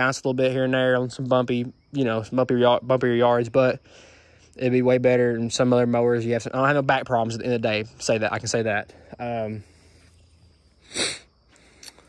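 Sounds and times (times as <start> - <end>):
faint background hiss: 0.0 - 12.0
person sniffing: 10.8 - 12.0.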